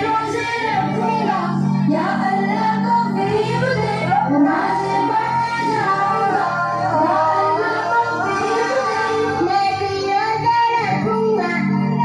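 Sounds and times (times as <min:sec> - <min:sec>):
high voice singing: 0:00.0 - 0:12.0.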